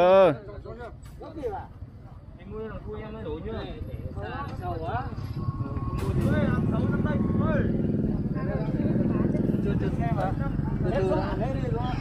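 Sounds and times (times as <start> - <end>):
people talking: 2.4 - 12.0
motorbike engine running: 5.2 - 12.0.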